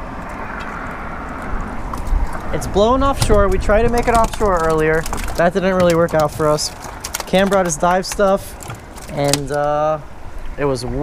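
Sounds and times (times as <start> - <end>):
water around boat: 0.0 - 11.0
wind buffeting microphone: 0.0 - 11.0.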